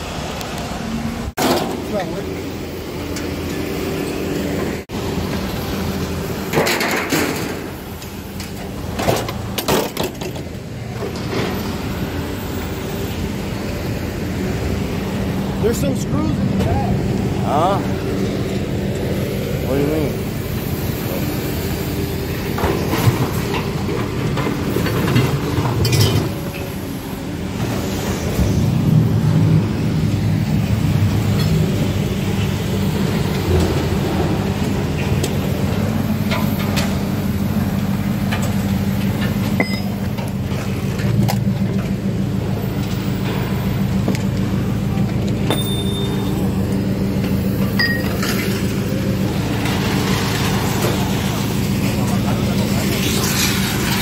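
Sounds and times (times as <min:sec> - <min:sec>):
heavy machinery engine drone: 0:00.0 - 0:54.0
metallic clinks and knocks: 0:39.6 - 0:40.1.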